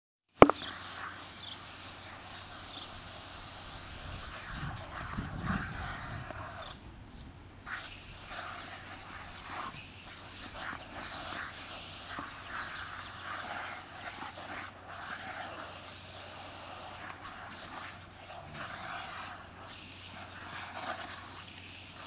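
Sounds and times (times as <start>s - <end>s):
sprinkler spray hiss: 0.4s - 6.8s, 7.6s - 22.0s.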